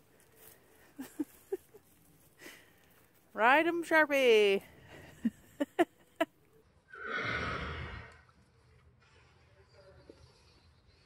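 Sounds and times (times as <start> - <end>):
horse blowing through nostrils: 6.9 - 8.4.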